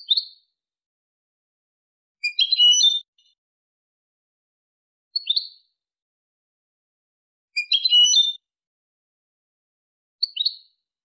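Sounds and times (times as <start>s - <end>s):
goldfinch song: 0.0s - 0.6s, 2.2s - 3.4s, 5.1s - 5.8s, 7.6s - 8.5s, 10.2s - 10.8s.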